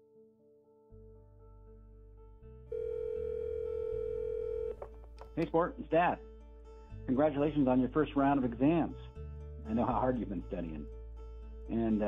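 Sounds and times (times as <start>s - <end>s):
soft background music: 0.0s - 12.0s
steady telephone tone: 2.7s - 4.8s.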